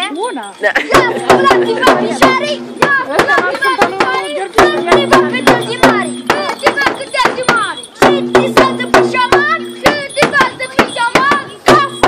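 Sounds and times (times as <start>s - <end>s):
large drums beating fast: 0.9s - 12.0s.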